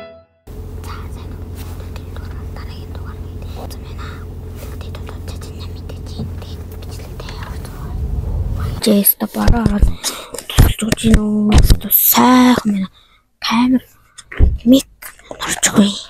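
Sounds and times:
low hum: 0.5 - 9.0
person whispering: 0.8 - 8.0.

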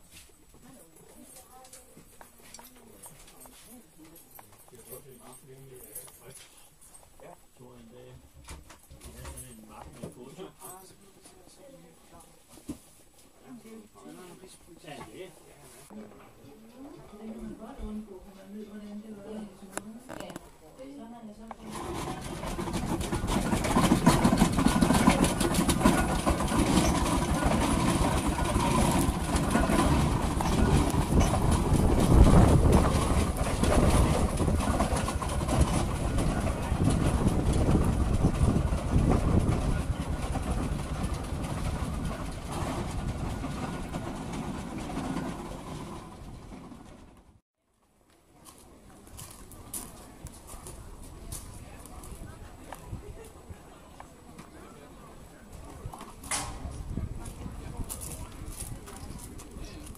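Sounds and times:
steam engine clattering: 21.6 - 47.4.

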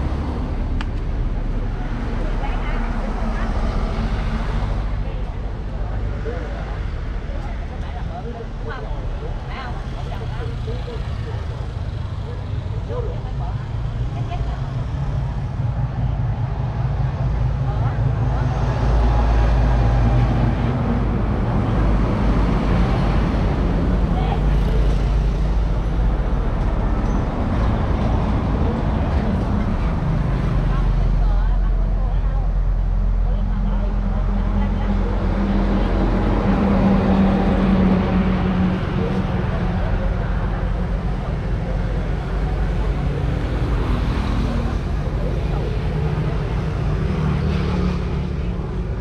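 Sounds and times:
faint voices: 0.0 - 49.0
large vehicle passing: 0.0 - 49.0
road traffic passing: 0.0 - 49.0.

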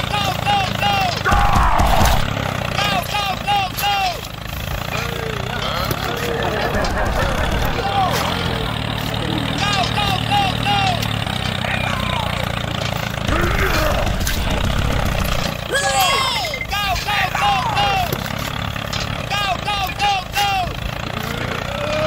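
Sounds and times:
tractor engine running: 0.0 - 22.0.

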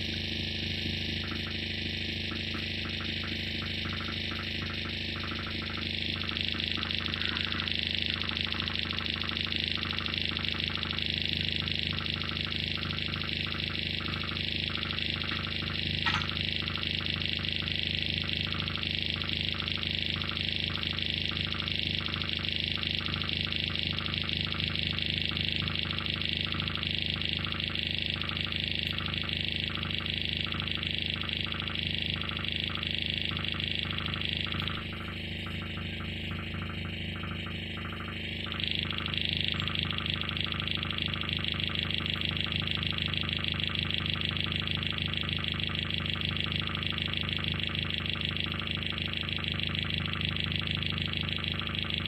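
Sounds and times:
electronic drone with hiss: 0.0 - 52.0
regular electronic pulse: 0.0 - 52.0.

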